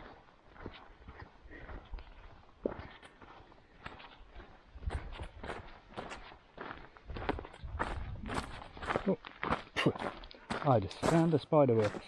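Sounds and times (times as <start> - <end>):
footsteps on gravel and leaves: 0.0 - 12.0.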